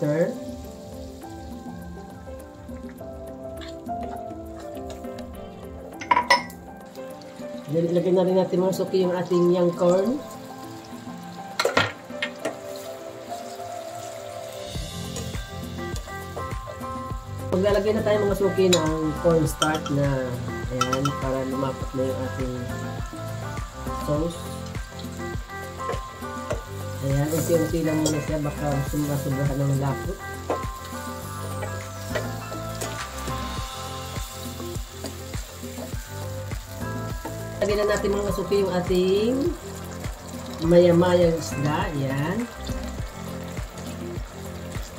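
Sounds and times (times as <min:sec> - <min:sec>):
background music with held tones: 0:00.0 - 0:44.9
sauce sizzling in a frying pan: 0:00.0 - 0:44.9.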